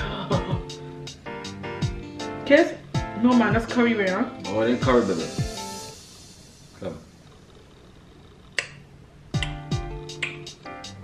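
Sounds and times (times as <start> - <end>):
kiss lip smack: 8.6 - 8.8, 9.4 - 10.6.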